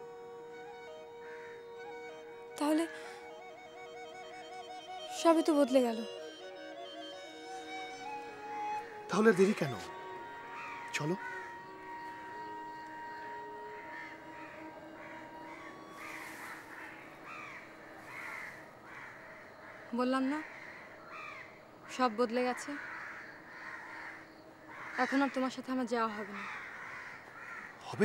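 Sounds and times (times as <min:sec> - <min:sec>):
background music held notes: 0:00.0 - 0:18.8
crows cawing: 0:01.2 - 0:02.0, 0:08.0 - 0:28.0.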